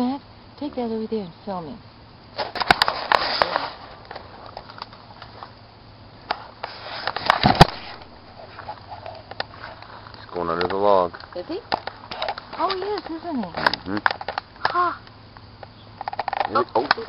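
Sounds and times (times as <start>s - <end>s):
twigs snapping: 2.4s - 5.4s.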